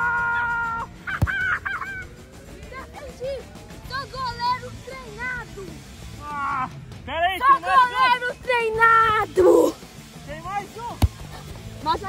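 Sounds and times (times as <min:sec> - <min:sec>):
football kicked thud: 0:11.0 - 0:11.6.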